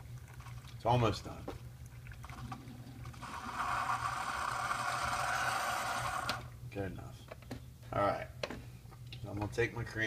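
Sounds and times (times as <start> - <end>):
coffee brewer pump hissing hum: 2.3 - 6.5.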